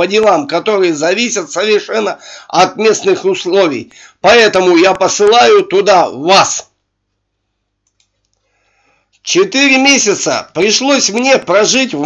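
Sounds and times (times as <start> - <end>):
computer mouse clicks: 7.8 - 8.4.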